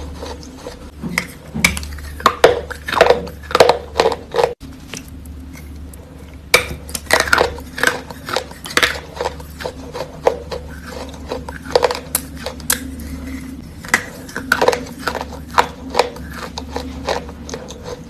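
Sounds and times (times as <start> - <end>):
chewing chalk crunches: 0.0 - 18.0.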